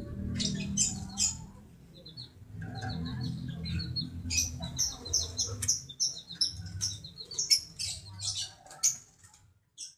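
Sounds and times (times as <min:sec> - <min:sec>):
lovebird chirping: 0:00.1 - 0:09.1.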